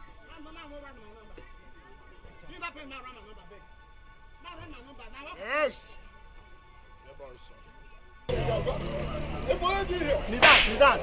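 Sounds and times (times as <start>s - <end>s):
men's raised voices: 8.3s - 11.0s
sharp slap: 10.4s - 11.0s.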